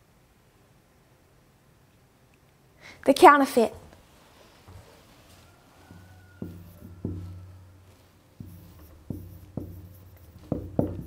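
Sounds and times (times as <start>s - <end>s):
marker tapping on whiteboard: 5.9s - 7.6s, 8.4s - 11.0s.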